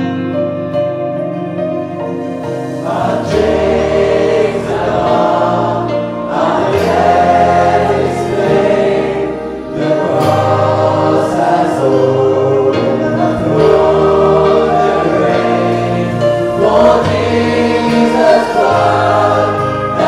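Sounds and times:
band accompanying: 0.0 - 20.0
congregation singing: 2.1 - 20.0.

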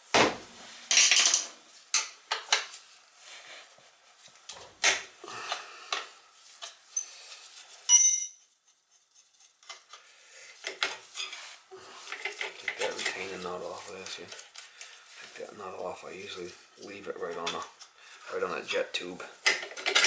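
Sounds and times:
sharp metallic clink: 7.9 - 8.5.

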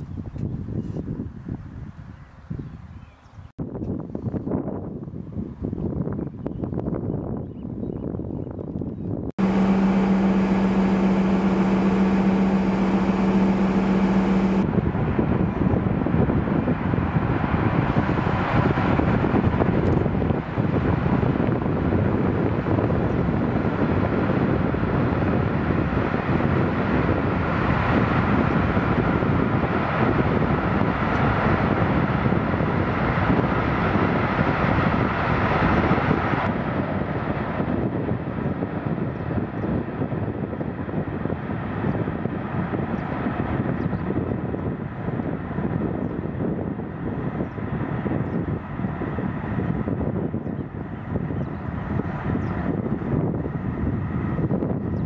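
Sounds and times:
wind noise on microphone: 0.0 - 55.0
boat churning through water: 9.4 - 14.7
ferry engines droning: 9.4 - 14.7
boat engine low hum: 9.4 - 55.0.

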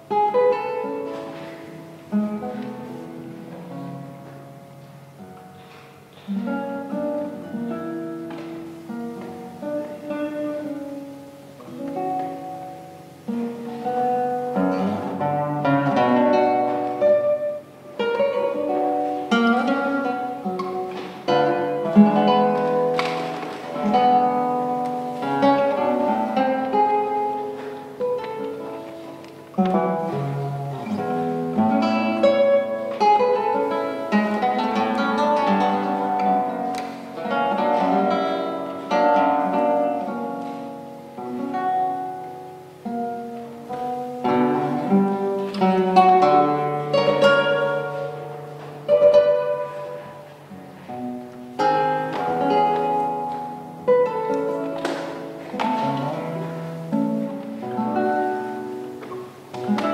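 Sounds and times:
fingerpicked classical guitar: 0.0 - 59.9.

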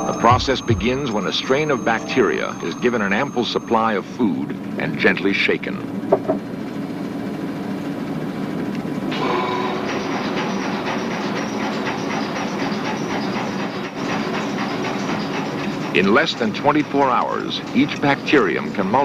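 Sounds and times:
laboratory shaker humming and rattling: 0.0 - 19.0.

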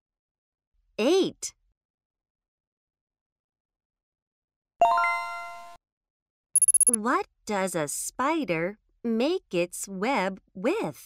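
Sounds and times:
bright electronic chime: 6.6 - 7.0
short high electronic ticks: 6.6 - 7.0.

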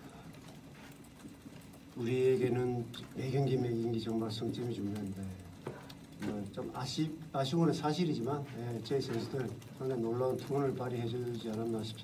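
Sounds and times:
faint clicks: 0.0 - 12.0.

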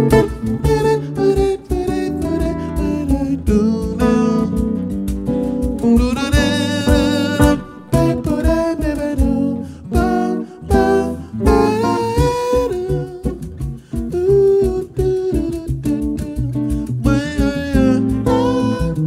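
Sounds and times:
man's wordless singing: 0.0 - 4.8, 5.8 - 19.0
jazz guitar: 0.0 - 19.0.

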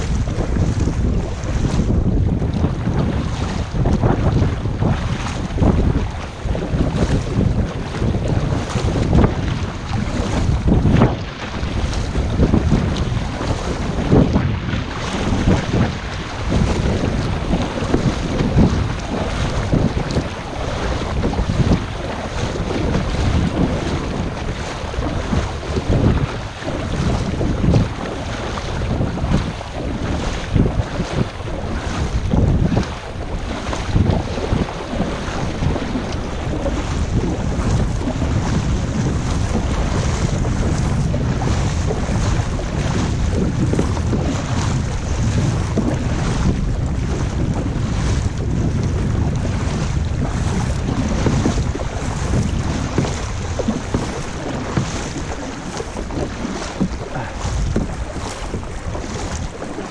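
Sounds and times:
water sloshing around kayak: 0.0 - 59.9
wind rumbling on microphone: 0.0 - 59.9.

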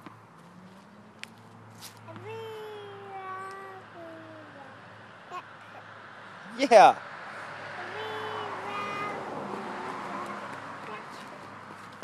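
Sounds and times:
toddler singing: 2.1 - 5.8, 7.8 - 11.4.

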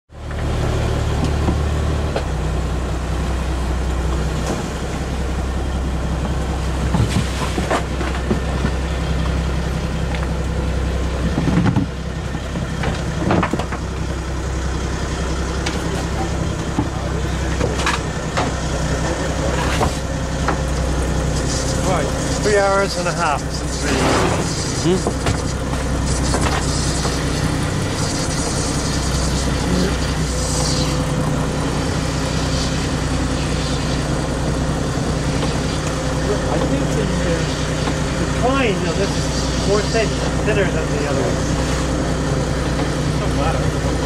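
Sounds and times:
boat engine humming: 0.1 - 44.0.

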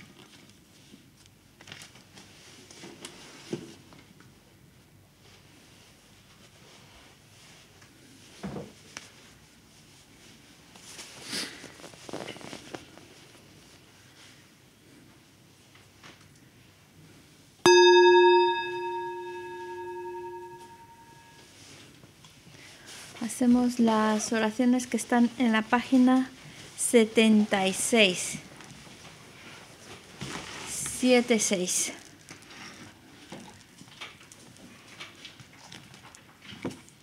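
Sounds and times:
singing bowl ringing: 17.7 - 21.4.

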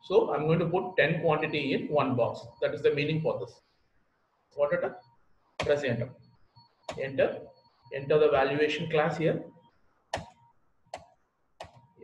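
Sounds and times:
computer mouse clicks: 10.1 - 11.9.

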